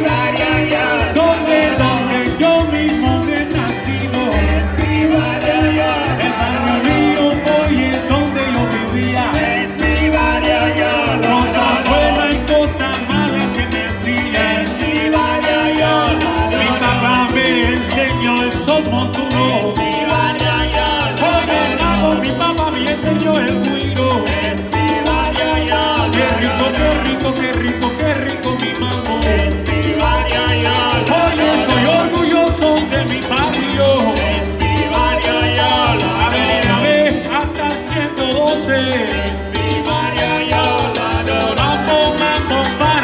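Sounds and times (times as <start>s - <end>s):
live salsa band: 0.0s - 43.0s
trombones: 0.0s - 43.0s.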